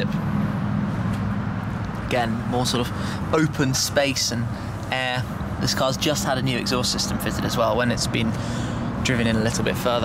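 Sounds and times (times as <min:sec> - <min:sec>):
vehicle engine humming steadily: 0:00.0 - 0:10.0.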